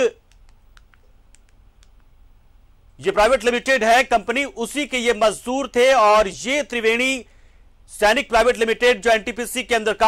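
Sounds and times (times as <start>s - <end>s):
man narrating: 0.0s - 0.2s, 3.0s - 7.3s, 7.9s - 10.0s
low steady background hum: 0.0s - 10.0s
faint sharp clicks: 0.2s - 2.2s.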